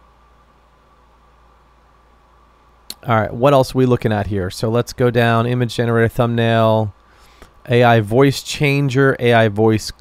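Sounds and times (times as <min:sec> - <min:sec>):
thin steady whine: 0:00.0 - 0:10.0
sharp intake of breath: 0:07.0 - 0:07.6.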